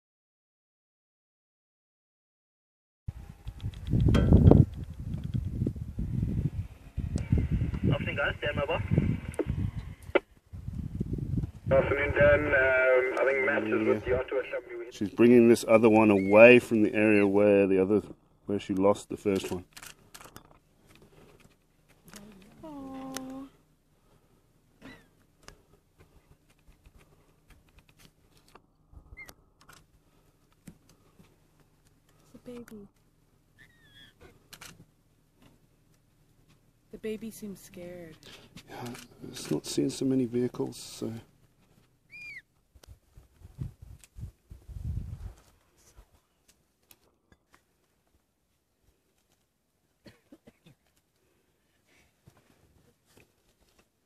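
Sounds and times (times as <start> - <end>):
sharp clicks: 3.4 - 5.6
radio-like human voices: 7.2 - 10.2, 11.7 - 17.4
high whistled call: 42.1 - 42.4.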